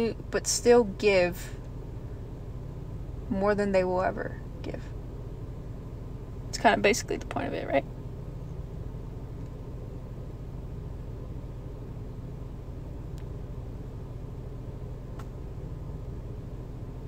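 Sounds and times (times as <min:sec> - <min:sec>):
car cabin engine hum: 0:00.0 - 0:17.0.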